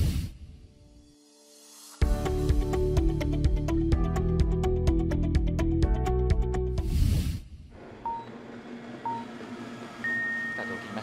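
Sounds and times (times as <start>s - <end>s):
short beeps: 10.0s - 11.0s.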